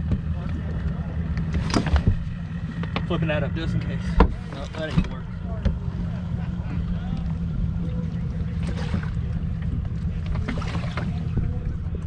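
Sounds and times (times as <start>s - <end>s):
steady low hum: 0.0s - 12.0s
knocks and clatter in compartment: 1.4s - 3.1s, 4.2s - 5.8s.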